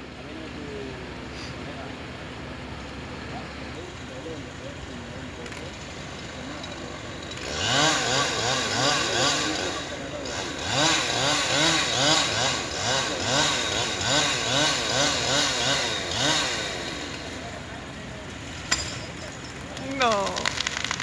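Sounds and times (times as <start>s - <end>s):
chainsaw cutting wood: 5.4s - 17.6s, 18.4s - 21.0s.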